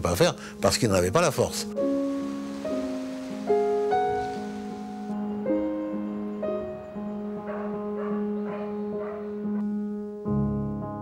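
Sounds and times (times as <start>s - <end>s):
soft solo piano music: 1.4s - 11.0s.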